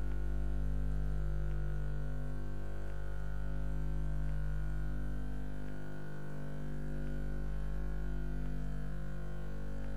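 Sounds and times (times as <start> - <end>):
low electrical hum: 0.0 - 9.9.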